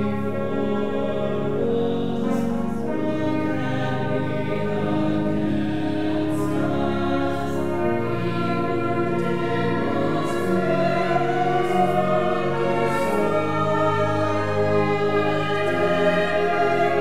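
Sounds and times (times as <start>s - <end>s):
brass accompaniment: 0.0s - 17.0s
choir singing a hymn: 0.0s - 17.0s.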